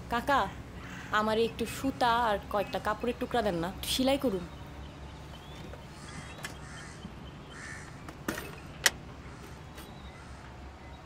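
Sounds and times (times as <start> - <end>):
crows cawing: 0.8 - 1.2, 5.9 - 8.0.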